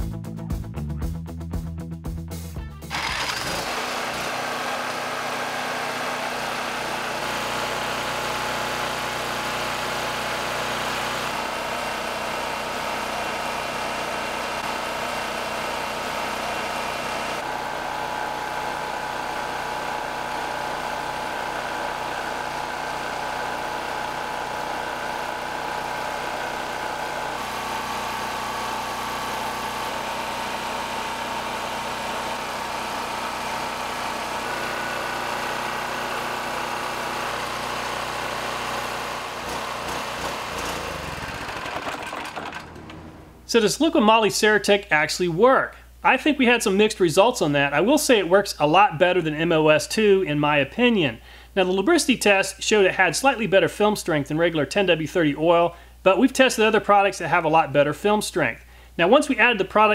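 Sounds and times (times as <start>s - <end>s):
portable generator engine: 2.8s - 44.2s
lawn mower engine running: 2.9s - 43.6s.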